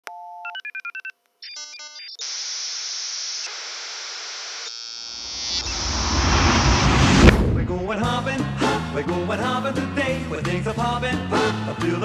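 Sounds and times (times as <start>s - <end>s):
low rumbling swell: 5.2s - 9.0s.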